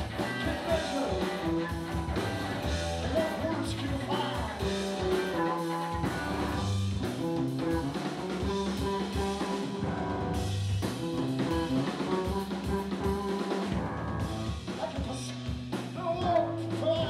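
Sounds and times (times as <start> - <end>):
drum kit: 0.0 - 17.0
electric bass: 0.0 - 17.0
electric guitar: 0.0 - 17.0.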